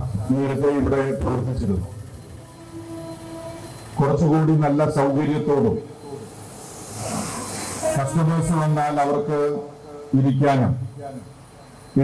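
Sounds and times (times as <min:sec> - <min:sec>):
steady horn-like tone: 0:00.4 - 0:10.4.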